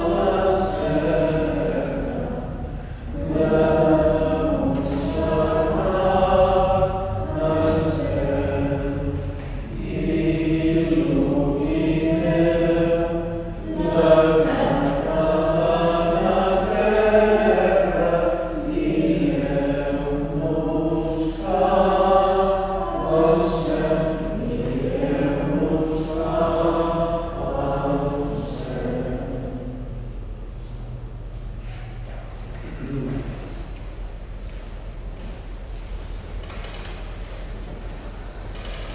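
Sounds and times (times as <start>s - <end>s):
voices singing slow chant: 0.0s - 30.3s, 31.6s - 33.8s.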